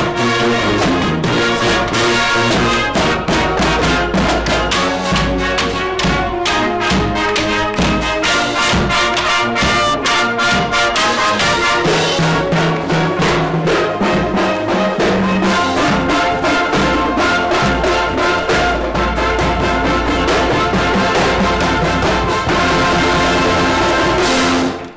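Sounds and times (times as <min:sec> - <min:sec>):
brass and clarinets playing: 0:00.0 - 0:24.9
drumline marching beat: 0:00.0 - 0:24.9.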